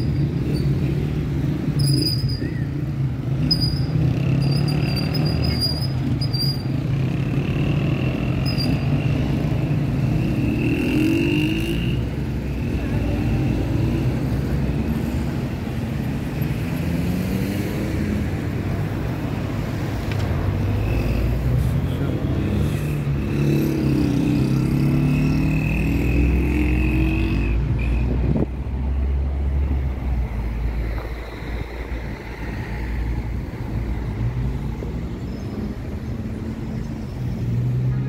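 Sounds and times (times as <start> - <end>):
traffic engines rumbling: 0.0 - 38.0.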